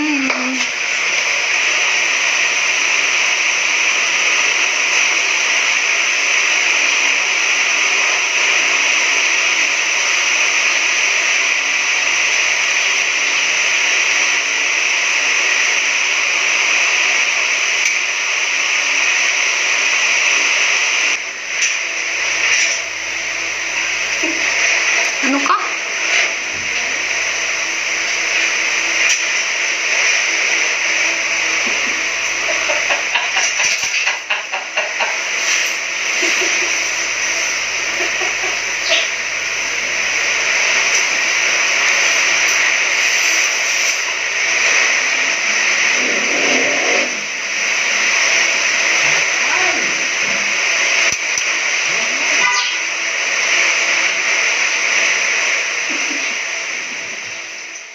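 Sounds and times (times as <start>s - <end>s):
loud steady hiss: 0.0s - 57.9s.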